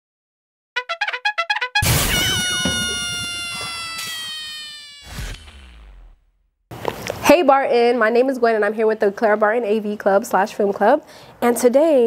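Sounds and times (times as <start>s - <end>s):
brass fanfare chord: 0.8s - 3.7s.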